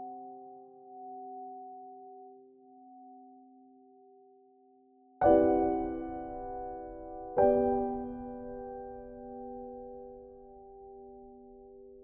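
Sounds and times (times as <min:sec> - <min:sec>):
piano chord ringing: 0:05.2 - 0:12.0.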